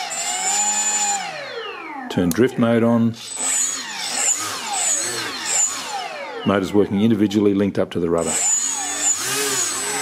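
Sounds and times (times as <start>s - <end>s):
electric motors whining: 0.0s - 7.5s, 8.2s - 10.0s.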